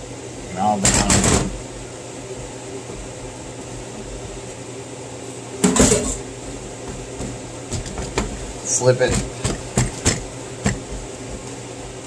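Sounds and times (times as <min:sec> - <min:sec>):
low kitchen hum: 0:00.0 - 0:12.0
hands working dough: 0:00.7 - 0:12.0.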